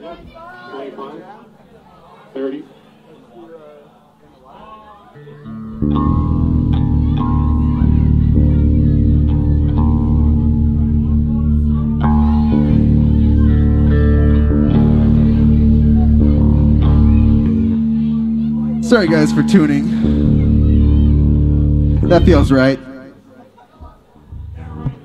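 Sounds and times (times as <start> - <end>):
plucked guitar notes: 5.2 - 25.0
long-held low bass notes: 5.6 - 23.1, 24.3 - 25.0.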